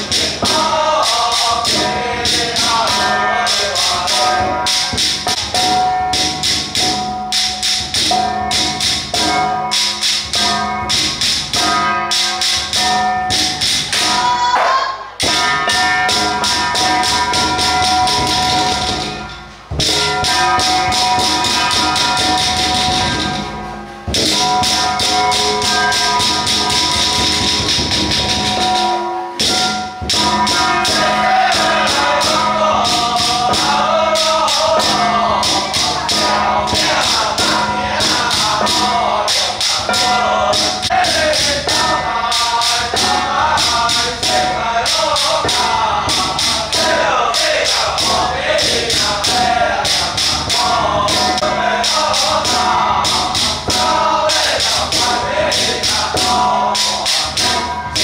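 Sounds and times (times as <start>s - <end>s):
drum and hand percussion rhythm: 0.0s - 58.0s
group chanting: 0.0s - 58.0s
ringing tones: 0.0s - 58.0s.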